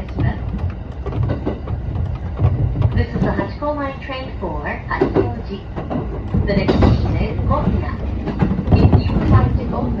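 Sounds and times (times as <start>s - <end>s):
recorded announcement: 0.0s - 0.6s, 2.9s - 10.0s
moving train running noise: 0.0s - 10.0s.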